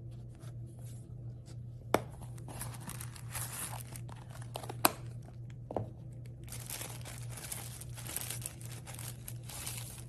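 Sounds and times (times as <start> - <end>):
tissue paper crinkling: 2.4 - 4.8, 6.4 - 10.0.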